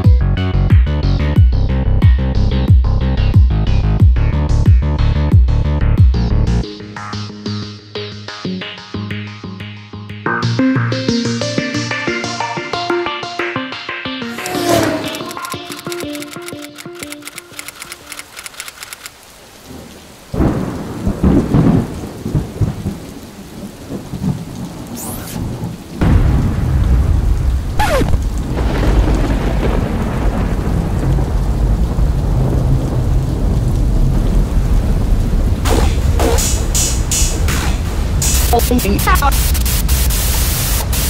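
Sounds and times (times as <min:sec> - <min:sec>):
low rumble with rain-like hiss: 0:19.2 - 0:41.0
electronic music: 0:35.7 - 0:41.0.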